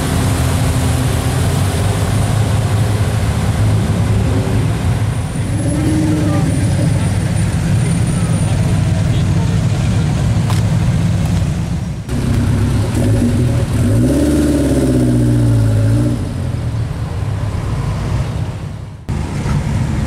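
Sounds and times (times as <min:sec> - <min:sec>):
car engines rumbling: 0:00.0 - 0:20.0
car engine revving: 0:12.1 - 0:19.4.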